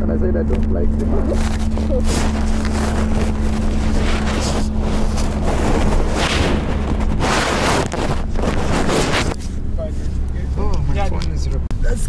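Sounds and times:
wind buffeting microphone: 0:00.0 - 0:10.3
car engine and road drone: 0:00.0 - 0:12.0.

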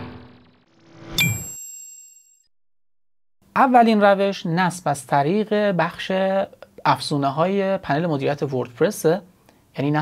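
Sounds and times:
bright metallic ding: 0:01.1 - 0:02.5.

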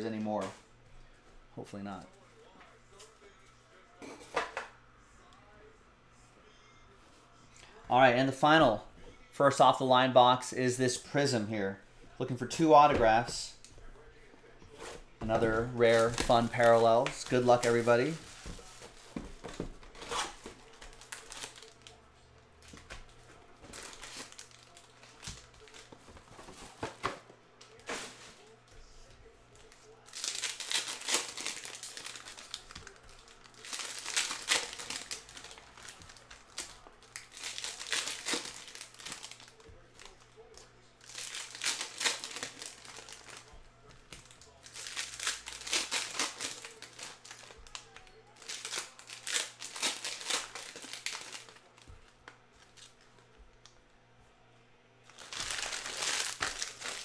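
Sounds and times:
foil wrappers tearing and crinkling: 0:15.6 - 0:19.2, 0:19.9 - 0:22.0, 0:23.6 - 0:26.8, 0:29.9 - 0:43.5, 0:44.1 - 0:52.0, 0:55.1 - 0:57.0.

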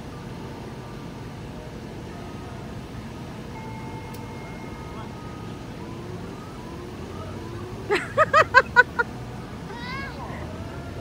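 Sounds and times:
faint distant voices: 0:00.0 - 0:11.0
low fairground rumble: 0:00.0 - 0:11.0.

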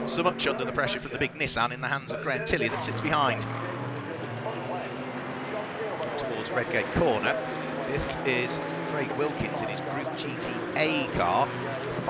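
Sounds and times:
race car engines running: 0:00.0 - 0:12.0.

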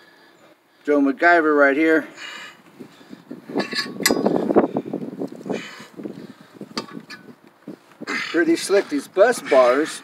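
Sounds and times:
metal clinks and knocks: 0:03.6 - 0:04.4, 0:06.7 - 0:07.3.

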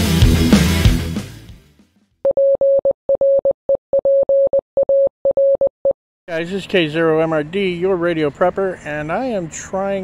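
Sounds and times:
morse code tone: 0:02.3 - 0:06.0.

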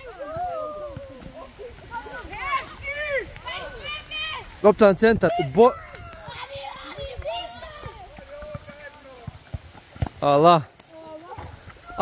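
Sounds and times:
children shouting and calling: 0:00.0 - 0:09.3, 0:10.9 - 0:12.0.

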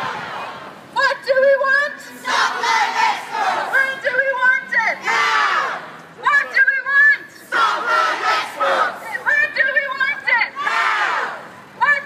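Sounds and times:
crowd shouting in unison: 0:02.2 - 0:03.8, 0:04.9 - 0:05.9, 0:07.5 - 0:09.2, 0:10.6 - 0:11.5.

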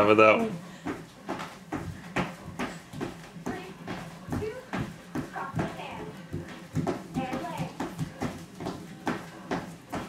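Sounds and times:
sneakers thumping on hardwood floor: 0:00.4 - 0:10.0.

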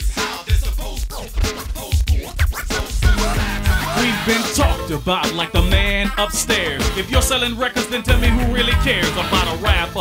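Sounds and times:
record scratching on turntable: 0:00.0 - 0:04.7
hip hop beat: 0:00.0 - 0:10.0
heavy kick drum hits: 0:01.0 - 0:03.9.

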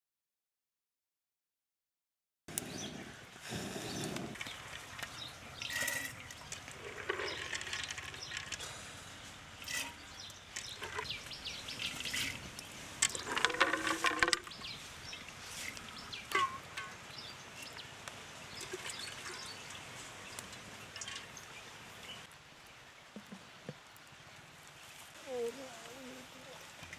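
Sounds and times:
water pouring from bucket: 0:04.4 - 0:08.7, 0:09.6 - 0:17.0, 0:17.7 - 0:21.5
maize kernels rattling: 0:04.4 - 0:08.8, 0:09.6 - 0:14.8.

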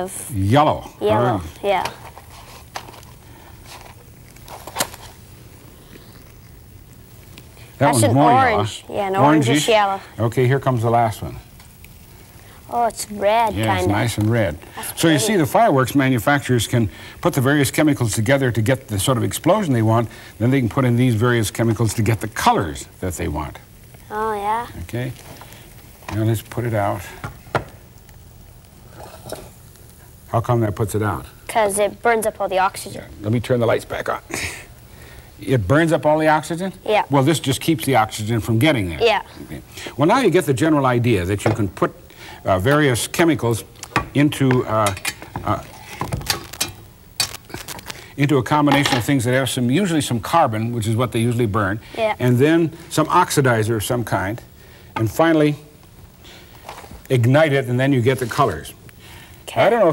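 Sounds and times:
steady low hum: 0:00.0 - 0:59.9.

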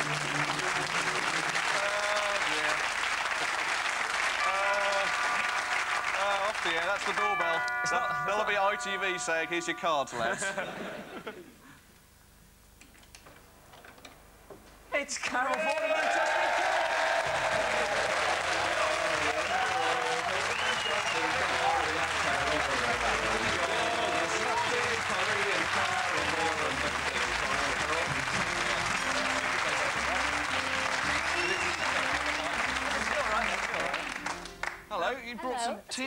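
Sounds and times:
audience clapping and cheering: 0:00.0 - 0:10.1, 0:15.3 - 0:35.1.

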